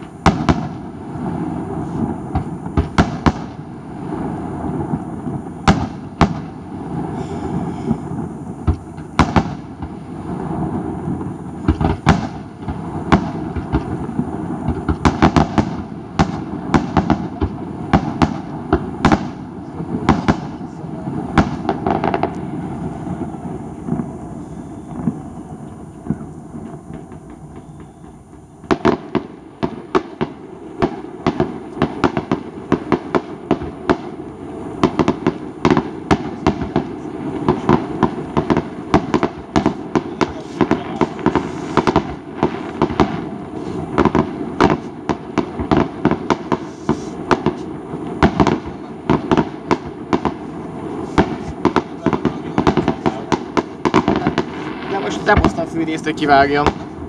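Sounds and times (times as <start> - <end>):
fireworks bangs and crackles: 0.0 - 57.0
fireworks bursting: 0.0 - 57.0
rumble of fireworks: 0.0 - 57.0.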